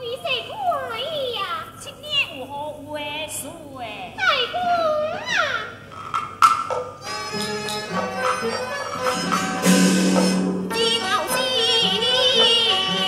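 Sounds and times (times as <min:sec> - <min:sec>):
high-pitched opera stage speech: 0:00.0 - 0:05.8.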